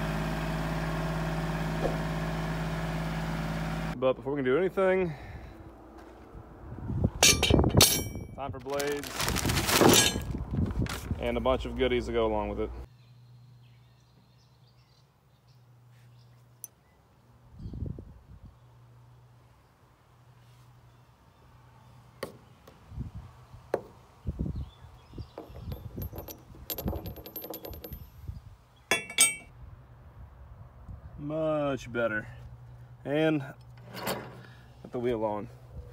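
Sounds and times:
loud metallic clatter: 7.2 - 8.4
metal hardware clinking: 7.2 - 8.4, 9.9 - 10.2, 25.4 - 28.2, 28.9 - 29.5.

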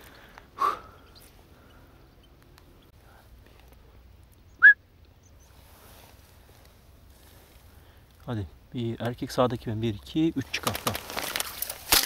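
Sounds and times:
sharp rising whistled chirp: 4.5 - 4.8.

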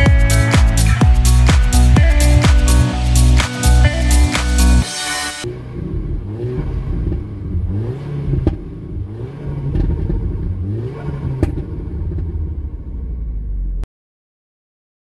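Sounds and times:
background music: 0.0 - 5.5
car engine revving: 0.0 - 13.8
exhaust pops: 11.2 - 12.6.

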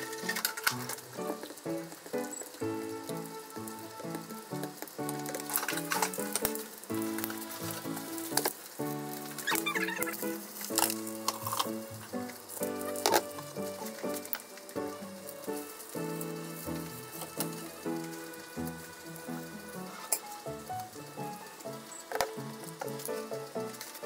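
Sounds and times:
background music: 0.0 - 24.0
food sizzling in oil: 0.0 - 24.0.

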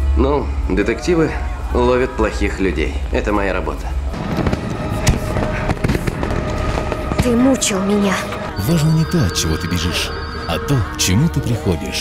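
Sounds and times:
fireworks bangs: 4.1 - 7.9
fireworks crackling and popping: 4.2 - 7.6.

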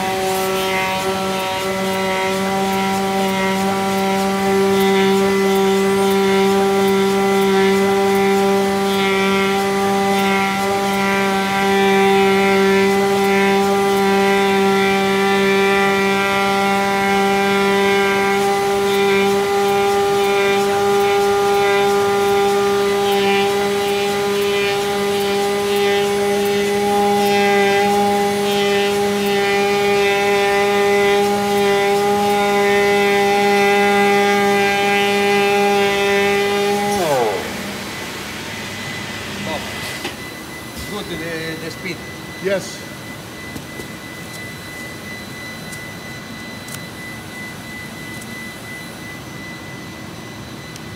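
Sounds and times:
milling machine spindle whine: 0.0 - 50.9.

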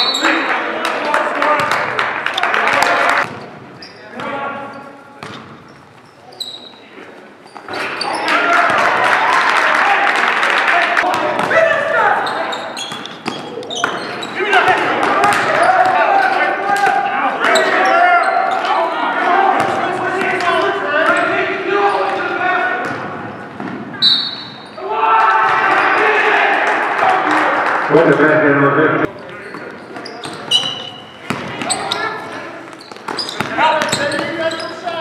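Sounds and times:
basketball bouncing on gym floor: 14.8 - 16.0, 30.2 - 32.0.

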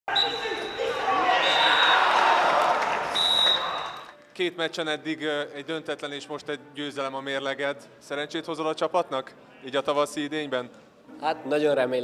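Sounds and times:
referee whistle blasts: 0.1 - 2.2, 3.1 - 4.1
players shouting: 0.1 - 3.8
crowd noise: 0.1 - 4.1.

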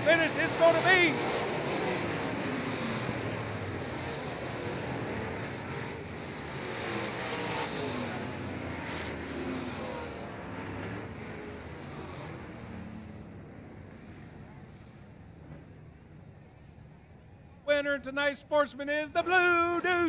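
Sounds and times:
race car engines passing: 0.0 - 20.0.

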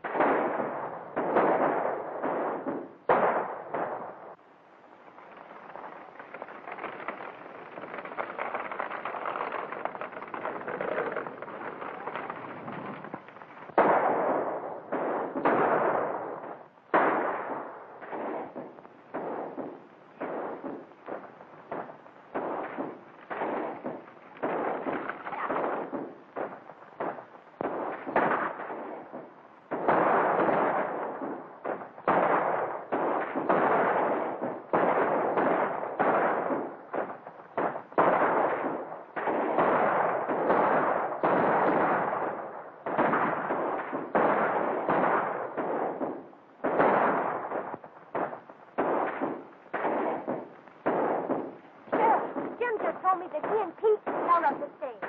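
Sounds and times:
echoing gunshots: 0.0 - 55.0.

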